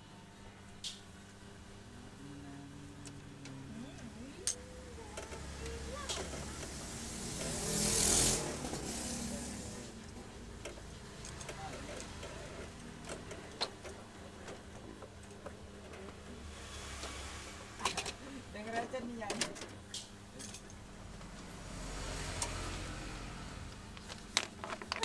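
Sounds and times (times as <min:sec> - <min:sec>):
motor vehicle passing: 0:02.0 - 0:10.0, 0:16.4 - 0:17.9, 0:21.1 - 0:24.1.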